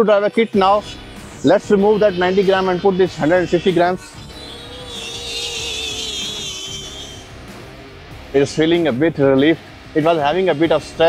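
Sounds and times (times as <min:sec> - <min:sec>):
drone propellers humming: 0:00.9 - 0:08.7
high wavering motor whine: 0:02.1 - 0:07.9.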